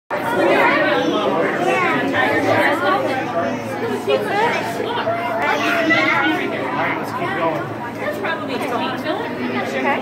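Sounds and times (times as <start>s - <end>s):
crowd chatter: 0.1s - 10.0s.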